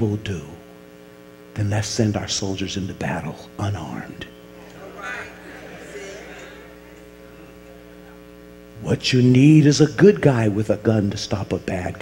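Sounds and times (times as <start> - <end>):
electrical mains hum: 0.0 - 12.0
man's voice: 1.6 - 6.3, 8.8 - 12.0.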